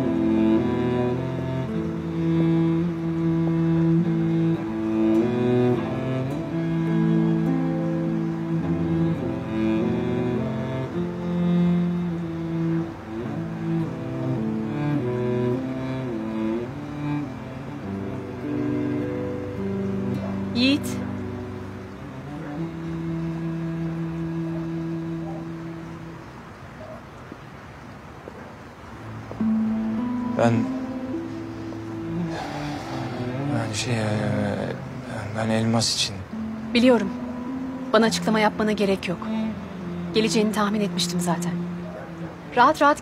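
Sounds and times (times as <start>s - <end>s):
low bowed strings: 0.0s - 28.0s, 28.7s - 43.0s.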